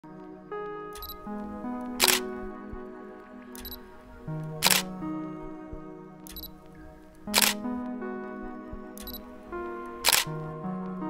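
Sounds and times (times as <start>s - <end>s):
sustained layered chords music: 0.0s - 11.0s
camera shutter clicks: 2.0s - 2.2s, 4.6s - 4.9s, 7.3s - 7.6s, 10.1s - 10.3s.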